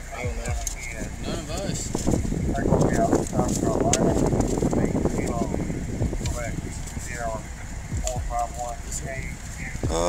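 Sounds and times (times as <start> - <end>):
indistinct voices: 0.0 - 10.0
steady low hum: 0.0 - 10.0.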